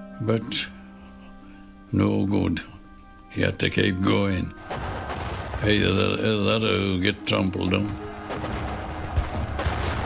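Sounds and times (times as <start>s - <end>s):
faint music: 0.0s - 10.0s
artillery and gunfire rumbling: 4.6s - 6.6s, 7.9s - 10.0s.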